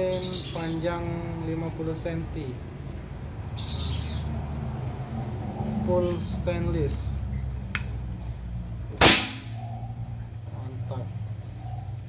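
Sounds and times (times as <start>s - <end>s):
air rifle shot: 9.0s - 9.7s.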